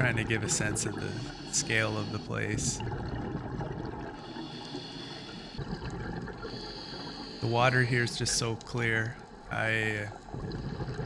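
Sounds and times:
underwater ambient rush: 0.0s - 11.0s.

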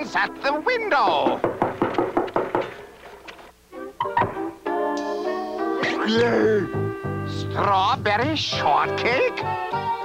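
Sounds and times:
knocks on a window: 1.1s - 2.7s
music with held chords: 3.7s - 10.0s.

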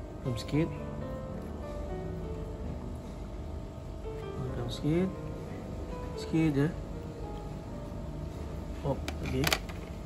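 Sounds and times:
faint steady hum: 0.0s - 10.0s
person speaking: 8.7s - 9.8s.

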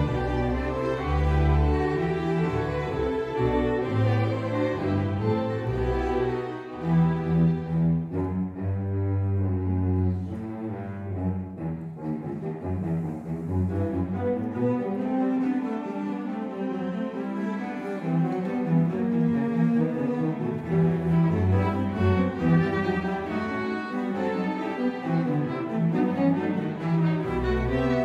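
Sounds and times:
string orchestra playing: 0.0s - 28.0s.

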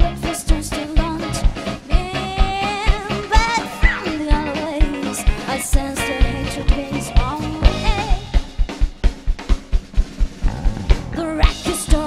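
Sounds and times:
live swing band playing: 0.0s - 8.6s, 10.3s - 12.0s
woman singing: 0.0s - 8.6s, 11.2s - 12.0s
fast drum beat: 0.0s - 12.0s.

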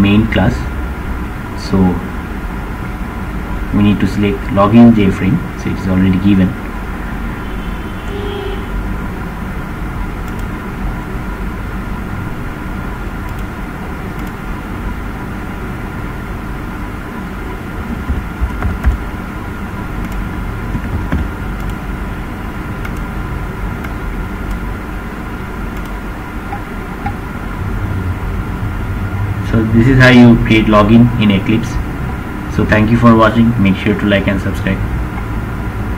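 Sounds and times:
background rumble and hum: 0.0s - 35.9s
faint clicks: 10.2s - 10.5s, 25.8s - 27.2s.

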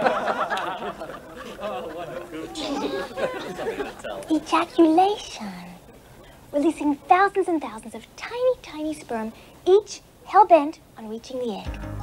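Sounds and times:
students chattering quietly: 0.0s - 10.3s.

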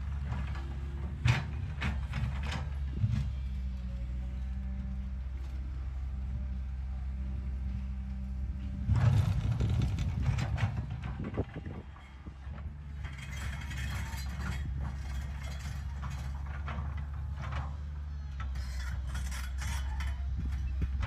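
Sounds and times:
excavator diesel engine running: 0.0s - 21.0s
metal clanks and scrapes: 0.2s - 3.4s, 8.9s - 21.0s
rocks tumbling and clattering: 8.9s - 12.0s.

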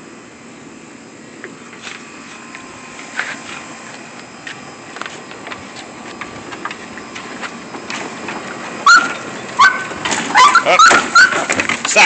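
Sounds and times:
dog yelping: 8.8s - 11.6s.

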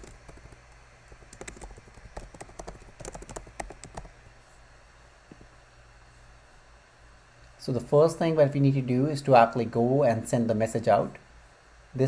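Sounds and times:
computer keyboard typing: 0.0s - 4.2s.

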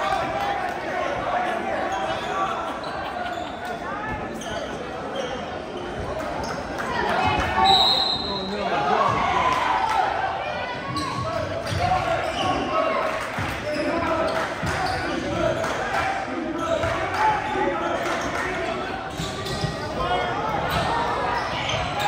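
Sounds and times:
spectators' voices: 0.0s - 22.0s
whistle blast: 7.6s - 8.5s.

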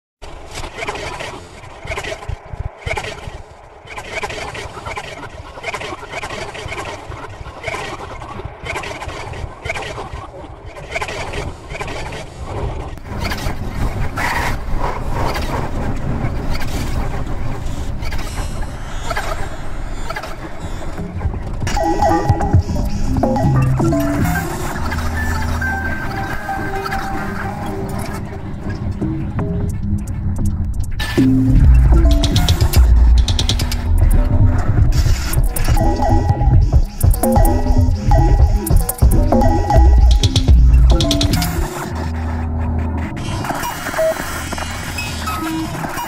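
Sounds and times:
experimental electronic music: 21.0s - 46.0s.

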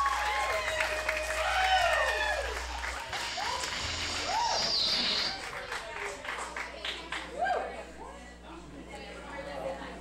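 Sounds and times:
scattered applause: 0.0s - 7.7s
electric guitar tones sliding: 2.7s - 5.4s.

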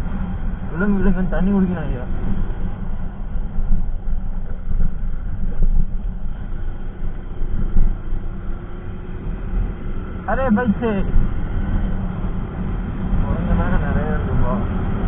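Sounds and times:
wind on microphone: 0.0s - 15.0s.

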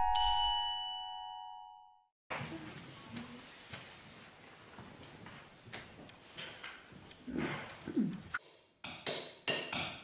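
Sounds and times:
keyboard tones ringing: 0.0s - 1.9s
bright bell-like ding: 0.0s - 2.0s.

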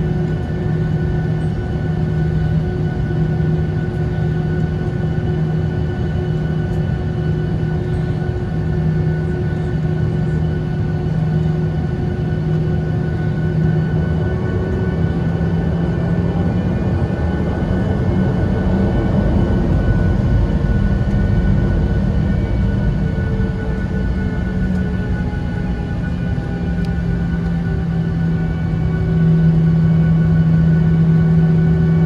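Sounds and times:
jet engines droning and whining: 0.0s - 32.0s
low engine rumble: 6.3s - 32.0s.

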